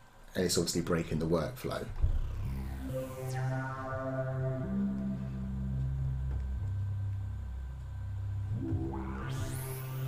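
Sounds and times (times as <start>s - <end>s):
synthesizer low held notes: 1.0s - 10.0s.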